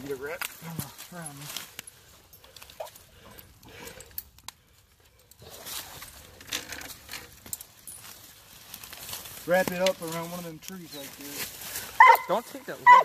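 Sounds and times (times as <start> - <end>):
rustling and crunching in leaves: 0.0 - 2.9, 5.4 - 13.0.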